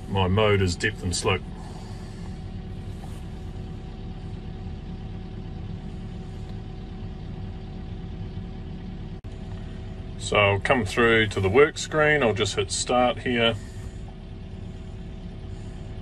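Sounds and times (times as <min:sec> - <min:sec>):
diesel engine idling: 0:00.0 - 0:16.0.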